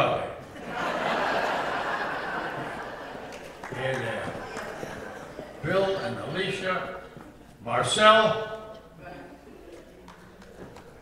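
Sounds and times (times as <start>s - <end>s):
footsteps on stage floor: 7.0s - 7.6s, 9.8s - 11.0s.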